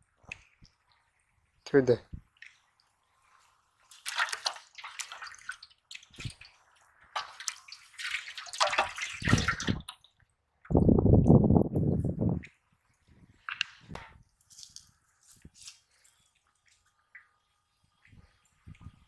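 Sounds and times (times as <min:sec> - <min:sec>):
water splashing and sloshing: 0:00.0 - 0:10.9, 0:12.3 - 0:19.0.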